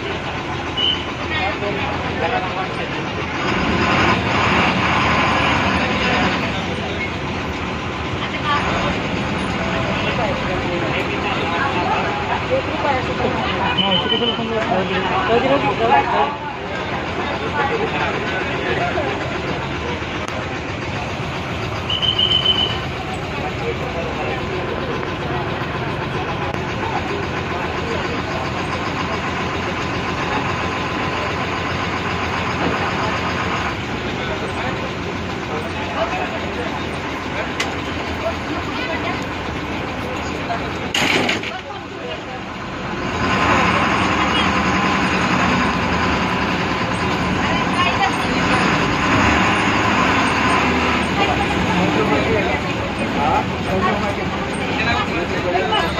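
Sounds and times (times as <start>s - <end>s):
bus diesel engine running: 0.0s - 55.9s
high beep: 21.9s - 22.8s.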